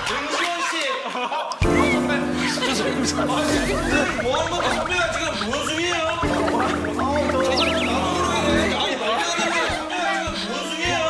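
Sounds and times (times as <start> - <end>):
background music: 1.6 - 11.0
voices: 1.6 - 11.0
short high blips: 7.2 - 8.7.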